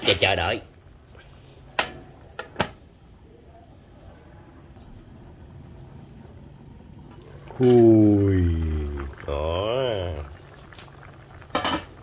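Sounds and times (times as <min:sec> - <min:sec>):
faint low background noise: 0:00.0 - 0:12.0.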